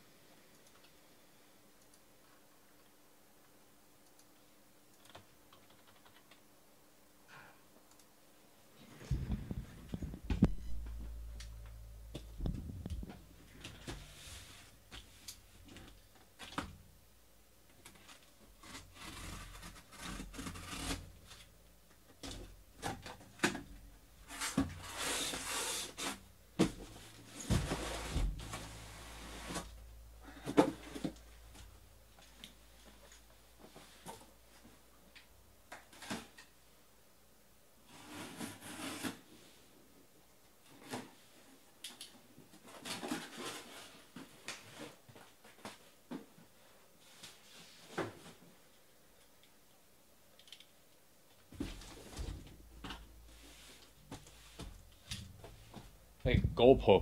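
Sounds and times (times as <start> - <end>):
cardboard scraping and rustling: 24.3 - 29.8.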